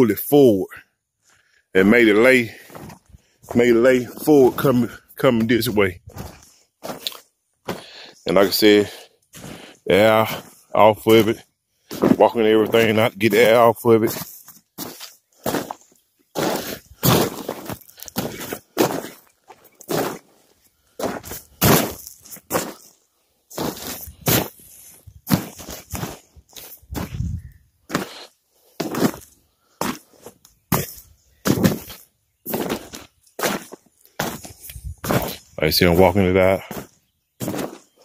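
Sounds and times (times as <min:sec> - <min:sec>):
footsteps on deflated vinyl slide: 0:11.2 - 0:20.4, 0:21.0 - 0:22.9, 0:23.5 - 0:35.5, 0:36.7 - 0:37.8.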